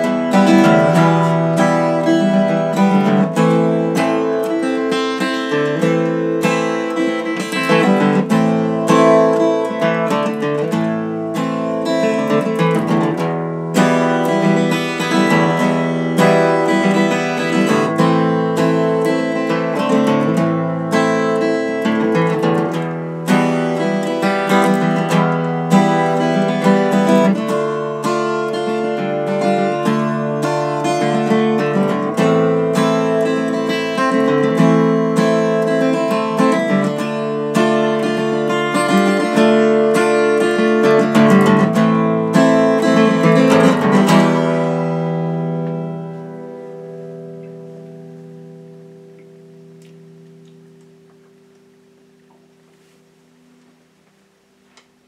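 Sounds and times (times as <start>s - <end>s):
acoustic guitar strumming: 0.0s - 55.0s.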